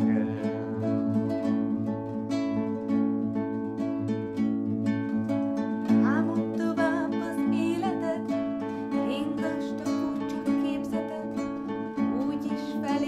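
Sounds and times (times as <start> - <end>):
acoustic guitars playing: 0.0 - 13.0.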